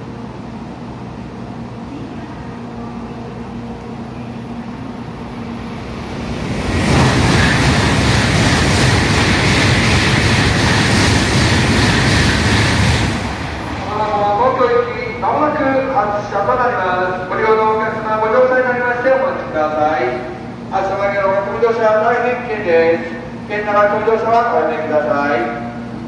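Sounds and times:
train passing at speed: 0:00.0 - 0:26.0.

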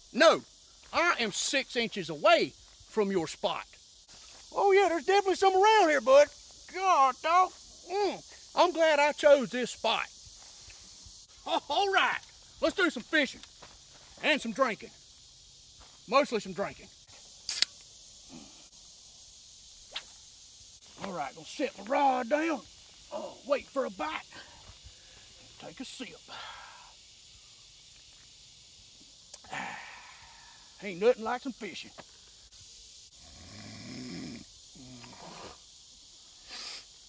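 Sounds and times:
insect chorus: 0:00.0 - 0:37.0
man snoring: 0:33.2 - 0:35.6.

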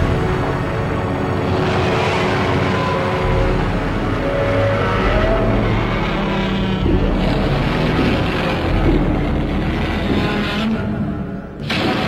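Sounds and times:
deep rumble: 0:00.0 - 0:11.6
background music: 0:00.0 - 0:12.0
monster roaring and growling: 0:01.4 - 0:12.0.

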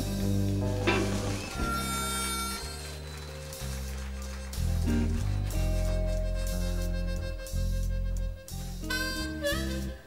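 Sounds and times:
electric blues band playing: 0:00.0 - 0:10.0.

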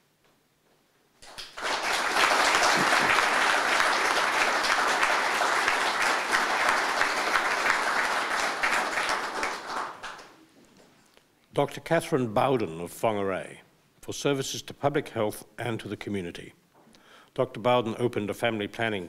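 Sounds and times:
audience applauding: 0:01.2 - 0:10.4.

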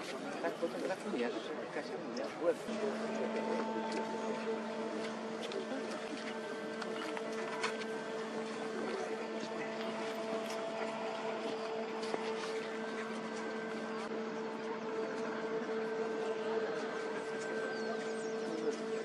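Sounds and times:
steady mechanical machinery hum: 0:00.0 - 0:19.0.

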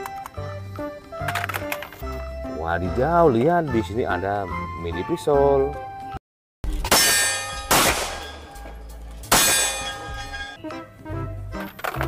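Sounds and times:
ringing metallic clangs: 0:06.8 - 0:10.6.

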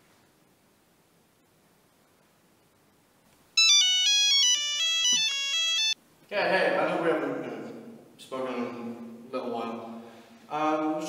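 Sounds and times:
mobile phone ringtone: 0:03.6 - 0:06.0.

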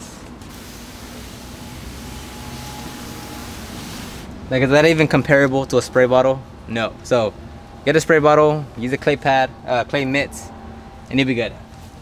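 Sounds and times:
pump sprayer hissing: 0:00.5 - 0:04.4.

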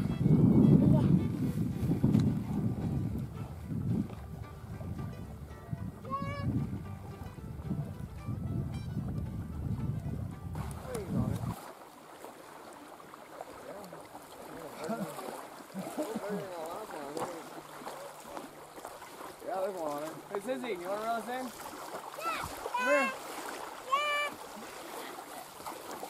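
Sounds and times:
wind buffeting microphone: 0:00.0 - 0:11.8, 0:14.8 - 0:25.0.

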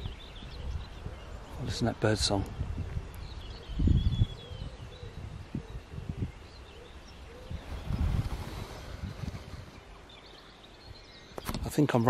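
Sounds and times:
wind buffeting microphone: 0:00.0 - 0:11.8
birds chirping: 0:00.0 - 0:12.0.

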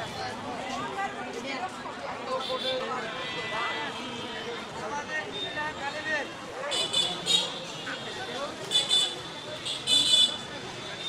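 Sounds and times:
road noise: 0:00.0 - 0:11.0.

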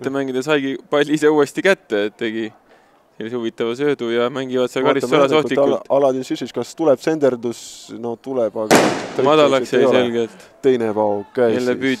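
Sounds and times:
sharp bang: 0:08.7 - 0:09.4.

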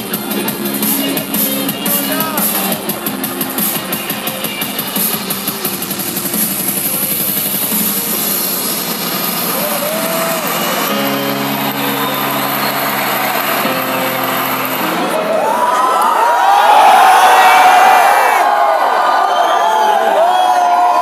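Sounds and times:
stage intro music: 0:00.0 - 0:18.6
crowd screaming and cheering: 0:00.0 - 0:21.0.

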